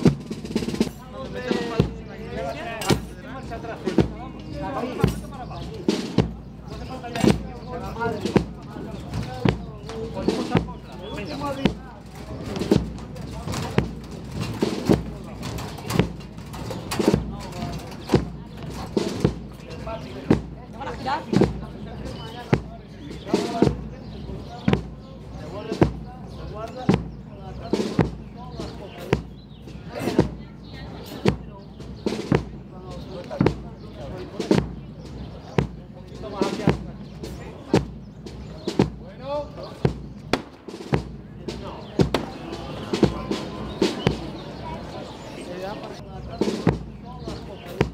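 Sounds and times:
marching beat of hard knocks: 0.0 - 45.2, 45.8 - 47.9
crowd murmur: 0.0 - 47.9.

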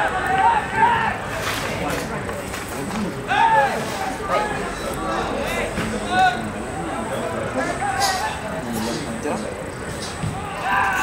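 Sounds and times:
people shouting: 0.0 - 1.4, 3.2 - 4.6, 10.3 - 11.0
steady background noise: 0.0 - 11.0.

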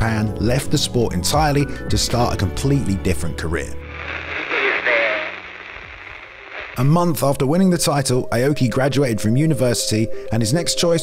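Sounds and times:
radio static hiss: 3.8 - 7.2
faint crackly radio voice: 3.9 - 6.9.

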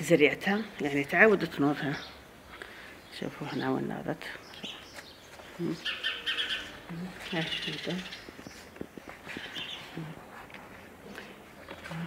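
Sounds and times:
small bird chirping: 3.0 - 10.2.

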